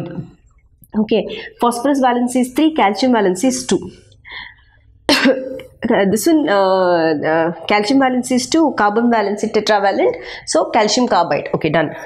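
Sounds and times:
woman coughing: 0:05.1 - 0:05.8.

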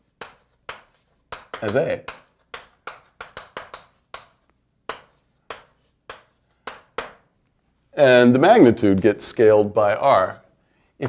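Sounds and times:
handwriting taps and scratches: 0:00.0 - 0:07.4.

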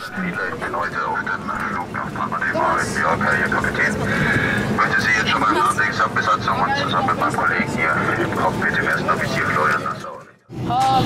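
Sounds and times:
voices talking over one another: 0:00.0 - 0:10.2
airliner cabin drone: 0:00.0 - 0:11.0.

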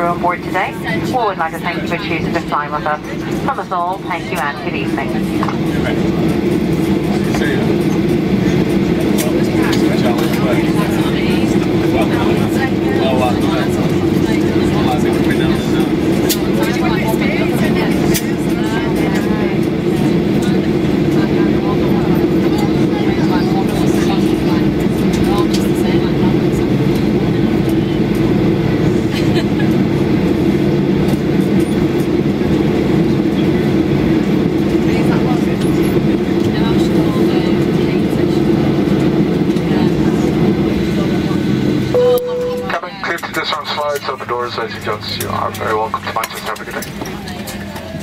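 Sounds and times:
aircraft cabin engine drone: 0:00.0 - 0:48.0
faint passenger chatter: 0:00.0 - 0:48.0.

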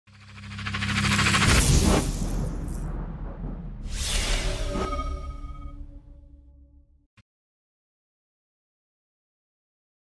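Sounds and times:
whoosh: 0:00.1 - 0:06.0.

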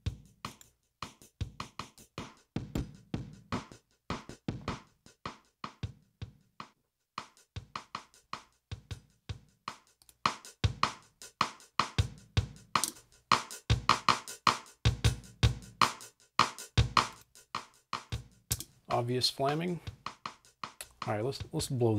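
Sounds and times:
drum loop beat: 0:00.0 - 0:21.9.

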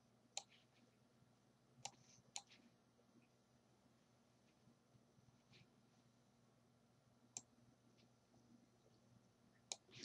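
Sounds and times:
faint low hum: 0:00.0 - 0:10.0
computer mouse clicks: 0:00.3 - 0:00.7, 0:01.8 - 0:02.6, 0:07.3 - 0:07.5, 0:09.7 - 0:10.0.

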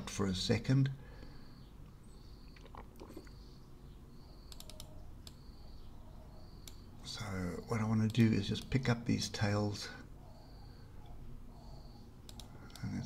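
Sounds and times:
low steady hum: 0:00.0 - 0:13.0
mouse and keyboard clicks: 0:04.5 - 0:05.4, 0:12.2 - 0:13.0.

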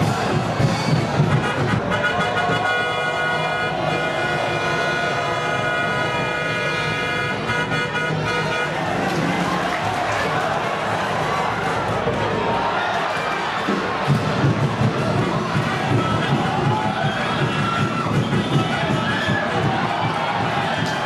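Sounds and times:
stadium crowd noise: 0:00.0 - 0:21.0
long horn blast: 0:01.4 - 0:09.3.

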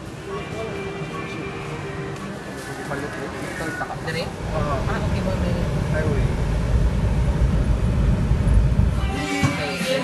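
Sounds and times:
faint voices: 0:00.0 - 0:06.6
car engine and road noise: 0:00.0 - 0:10.0.

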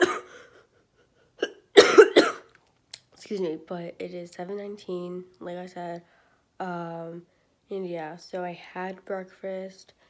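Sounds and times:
woman coughing: 0:00.0 - 0:00.6, 0:01.4 - 0:02.5.

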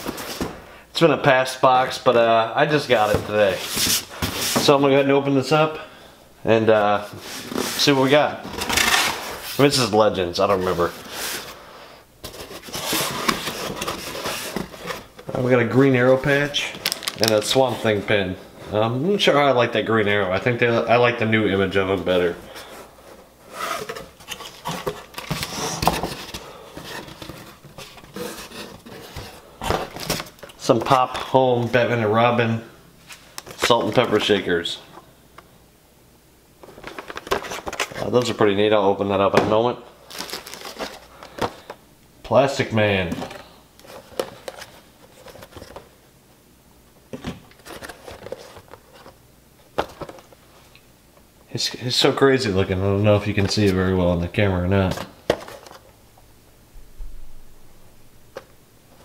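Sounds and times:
packaging rustling and crinkling: 0:12.2 - 0:18.0, 0:23.5 - 0:30.9, 0:36.6 - 0:38.4, 0:40.0 - 0:41.8, 0:43.0 - 0:45.9, 0:47.4 - 0:49.2.

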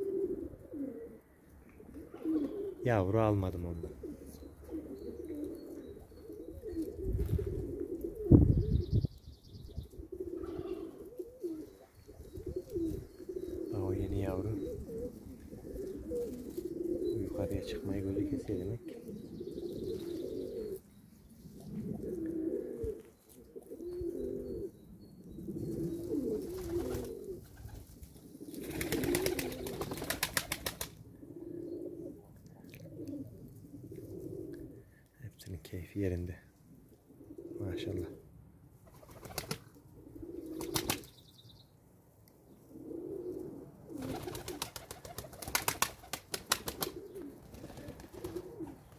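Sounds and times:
pigeons cooing: 0:00.0 - 0:35.1, 0:36.8 - 0:41.2, 0:42.5 - 0:48.9
wings flapping: 0:26.4 - 0:27.9, 0:28.6 - 0:31.0, 0:38.9 - 0:39.7, 0:40.6 - 0:41.1, 0:44.0 - 0:48.8.

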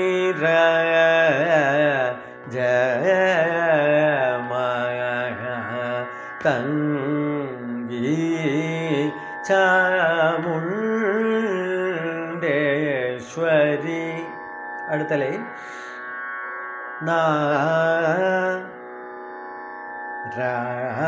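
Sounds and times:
man singing with ornamented glides: 0:00.0 - 0:21.0
steady drone: 0:00.0 - 0:21.0.

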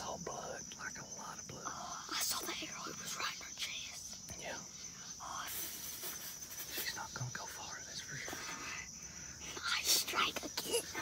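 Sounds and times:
boy whispering: 0:00.0 - 0:06.1, 0:06.7 - 0:11.0.

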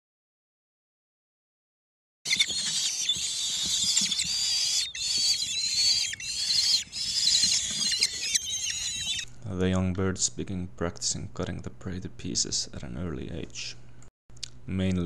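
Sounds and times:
nestlings shrill begging calls: 0:02.3 - 0:09.3.

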